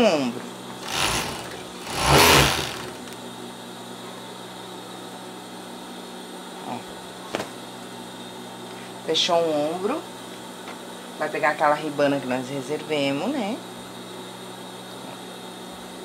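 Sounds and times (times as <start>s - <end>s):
motor humming: 0.8s - 3.2s
overlock machine stitching: 0.8s - 3.2s.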